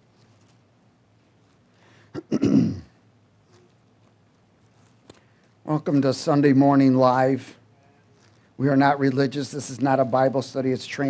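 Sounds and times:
man clearing his throat: 2.1s - 3.0s.

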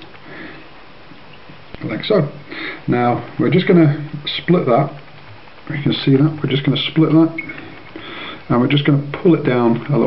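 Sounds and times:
man sniffing: 2.5s - 2.9s, 8.0s - 8.5s.

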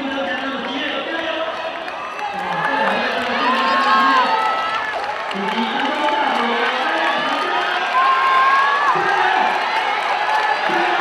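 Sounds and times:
spectators cheering and shouting: 0.0s - 11.0s
long drawn-out yells: 2.0s - 5.1s, 7.0s - 11.0s.

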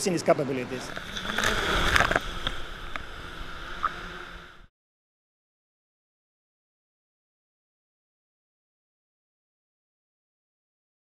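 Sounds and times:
drone rotors humming: 0.0s - 4.7s.

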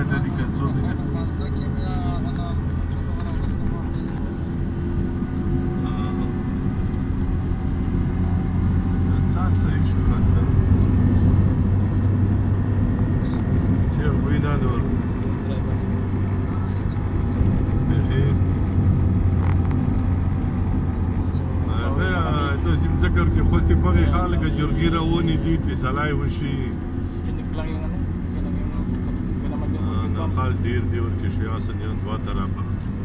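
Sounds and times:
vehicle engine and tyres drone: 0.0s - 33.0s.

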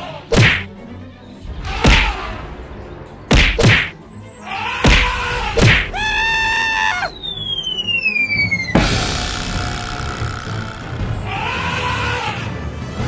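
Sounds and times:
background music with drums: 0.3s - 0.7s, 4.8s - 6.5s, 8.6s - 11.5s
sharp thud: 0.3s - 0.7s, 1.8s - 2.2s, 3.3s - 3.9s, 4.9s - 5.9s
falling whistle: 5.9s - 10.6s.

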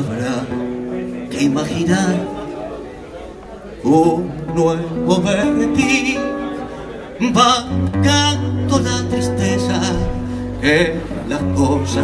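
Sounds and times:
acoustic guitar tango accompaniment: 0.0s - 12.0s
man singing: 0.0s - 12.0s.

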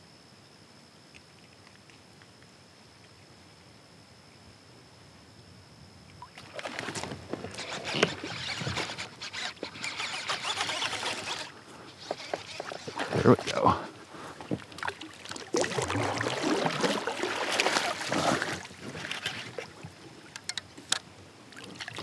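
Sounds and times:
kayak paddle splashing: 6.2s - 22.0s.

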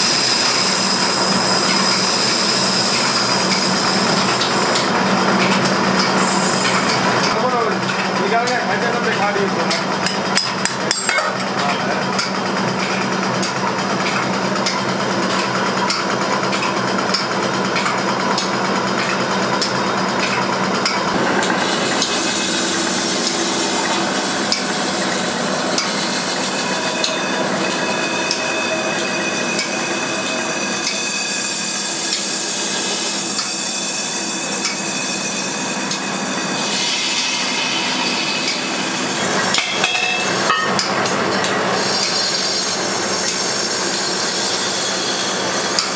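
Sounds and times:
lathe running: 0.0s - 45.9s.

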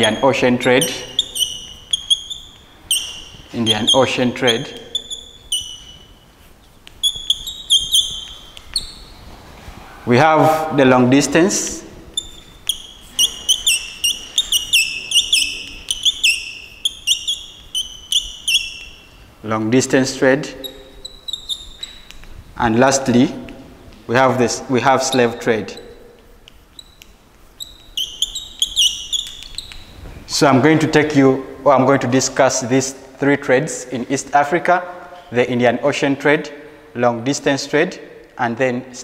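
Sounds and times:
chalk squeaking on blackboard: 0.0s - 9.4s, 11.2s - 19.4s, 20.0s - 23.2s, 24.8s - 30.0s.

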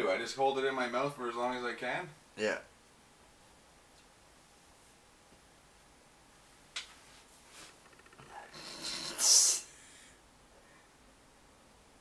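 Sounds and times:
man breathing hard through nose: 8.5s - 10.9s.

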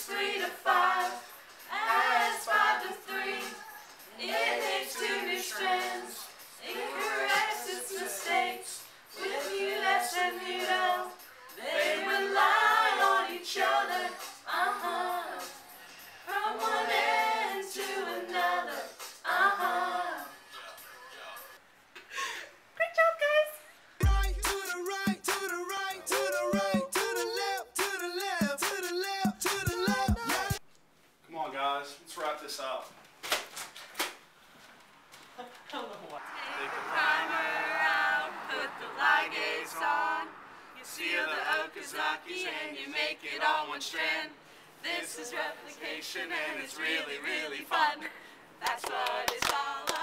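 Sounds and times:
group singing unaccompanied: 0.0s - 20.6s, 24.0s - 30.6s, 36.2s - 50.0s.

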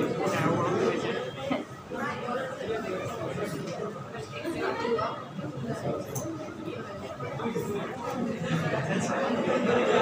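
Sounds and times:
students chattering: 0.0s - 10.0s.

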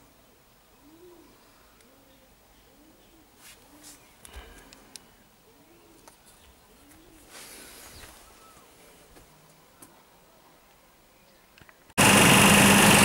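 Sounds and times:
pigeon cooing: 0.8s - 4.5s, 5.4s - 8.7s.

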